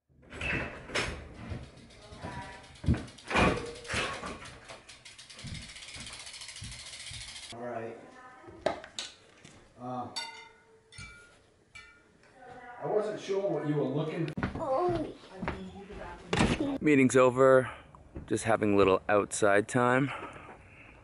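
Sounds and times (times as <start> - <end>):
bicycle knocks and clatter: 0.2 - 7.5
fast ticking: 1.6 - 7.5.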